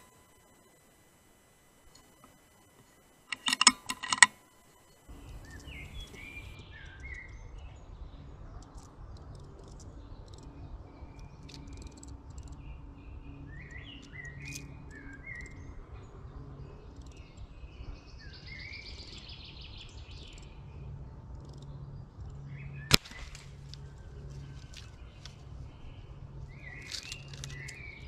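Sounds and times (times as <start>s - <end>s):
songbirds chirping: 0.0s - 28.0s
sharp clicks and knocks: 1.9s - 4.6s
low rumble of wind: 5.0s - 28.0s.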